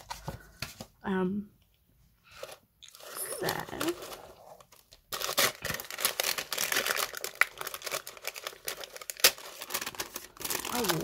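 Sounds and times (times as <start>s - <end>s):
tissue paper rustling and crinkling: 2.3s - 11.0s.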